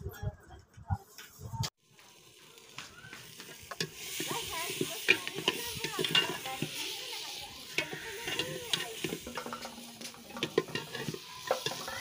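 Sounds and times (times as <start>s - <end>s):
cooking mixture sizzling: 1.8s - 12.0s
metal spoon scraping a pot: 3.4s - 12.0s.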